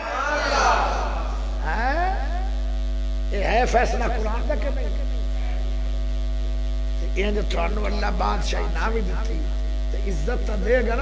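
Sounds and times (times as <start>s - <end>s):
man speaking: 0.0s - 2.5s, 3.3s - 5.1s, 7.0s - 11.0s
electrical mains hum: 0.0s - 11.0s.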